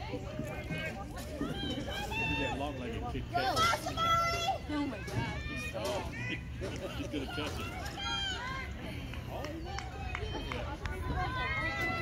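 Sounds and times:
crowd talking: 0.0 - 12.0.

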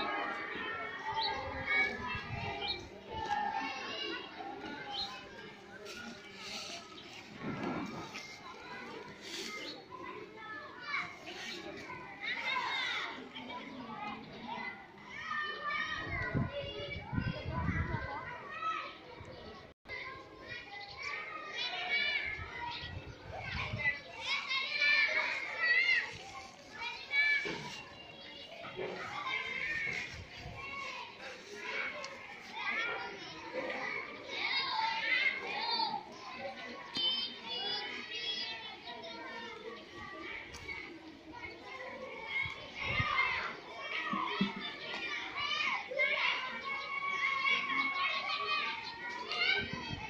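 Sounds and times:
children talking and calling out: 0.0 - 50.0.

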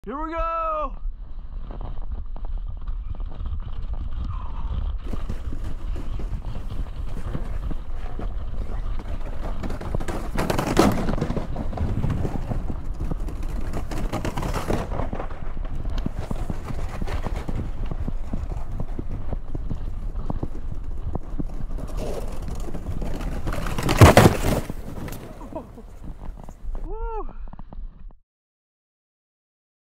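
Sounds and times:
wind on microphone: 1.0 - 10.4, 11.1 - 23.6
sled knocking and jolting: 1.4 - 26.9
sled runners scraping on ice: 1.4 - 26.9
person crying out: 26.9 - 27.4.

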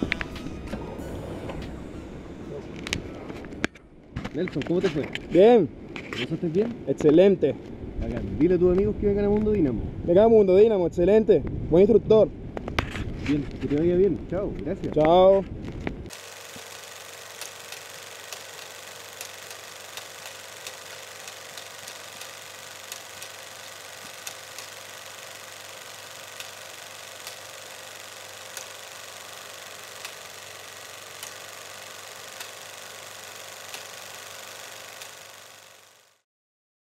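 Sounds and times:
faint hum: 0.0 - 10.1
steady hiss: 16.1 - 36.2.

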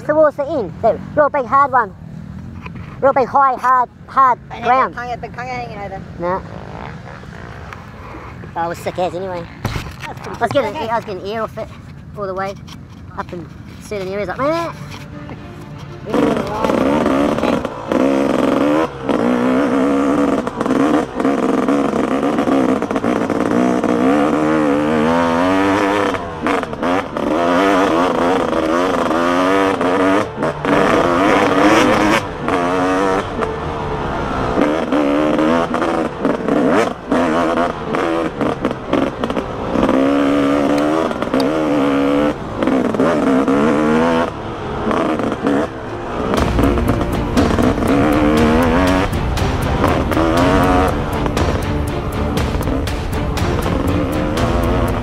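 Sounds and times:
dirt bike engine revving: 5.9 - 55.0.

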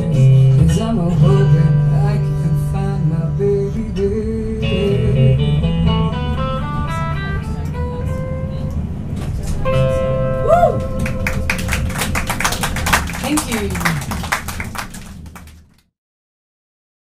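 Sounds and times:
guitars ringing held chord: 4.0 - 9.0, 9.6 - 11.9
hand clapping: 10.8 - 15.9.

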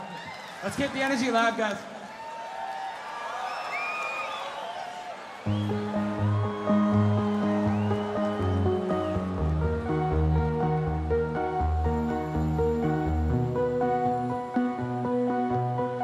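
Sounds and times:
crowd cheering and whistling: 2.0 - 13.3.

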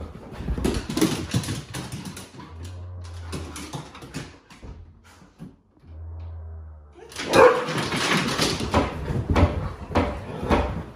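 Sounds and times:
dog claws clattering on wooden floor: 0.0 - 4.9, 7.1 - 10.9.

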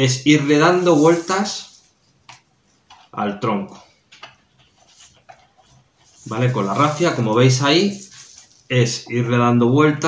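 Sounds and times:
faint rustling: 3.9 - 9.0.

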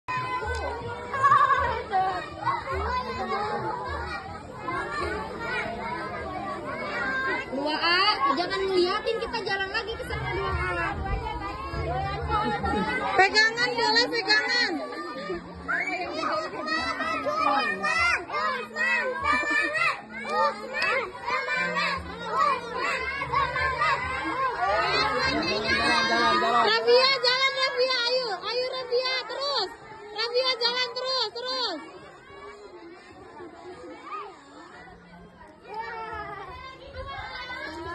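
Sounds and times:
children chattering and calling out: 0.1 - 37.9.

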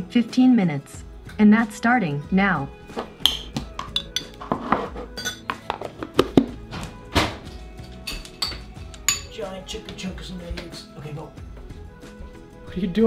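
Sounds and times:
background music: 0.0 - 13.0
dishes clinking and knocking: 3.2 - 6.6, 7.2 - 9.4.

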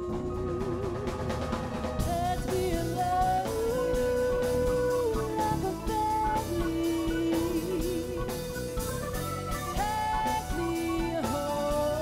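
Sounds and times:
acoustic band playing: 0.0 - 12.0.

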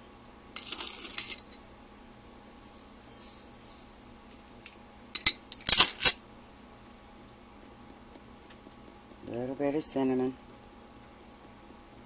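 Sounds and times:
spoon scraping in sugar: 0.6 - 1.6, 2.6 - 4.0.

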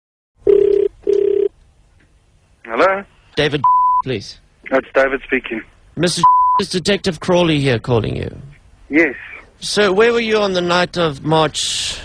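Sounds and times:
telephone ringback tone: 0.5 - 1.5.

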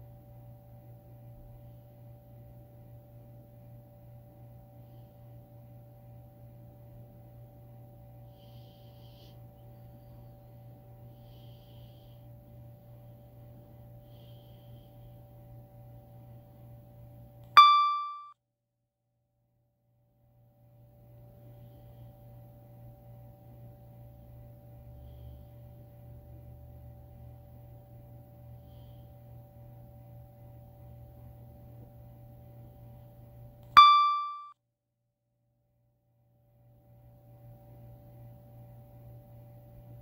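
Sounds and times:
faint low hum: 0.0 - 18.3, 20.0 - 34.5, 36.3 - 40.0
electronic ding: 17.6 - 18.4, 33.8 - 34.5.

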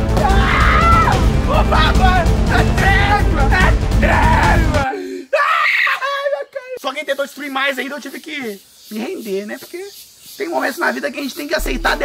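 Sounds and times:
young man screaming: 0.2 - 6.5.

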